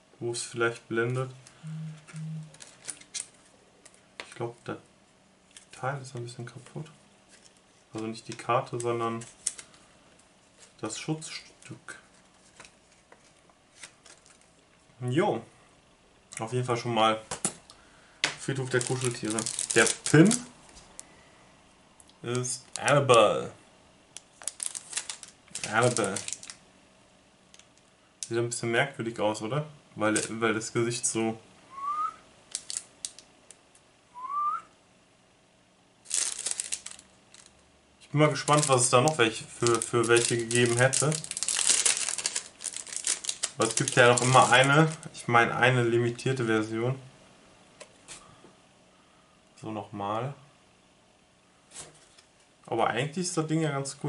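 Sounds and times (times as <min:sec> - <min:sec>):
packaging crinkling: 0:02.5 - 0:03.5, 0:09.2 - 0:09.8, 0:12.3 - 0:14.6, 0:18.4 - 0:21.0, 0:22.4 - 0:23.2, 0:24.3 - 0:26.6, 0:32.5 - 0:33.2, 0:36.0 - 0:37.6, 0:38.3 - 0:45.1
light rustling of card: 0:12.0 - 0:14.6, 0:18.5 - 0:21.0, 0:24.3 - 0:26.6, 0:38.3 - 0:45.0.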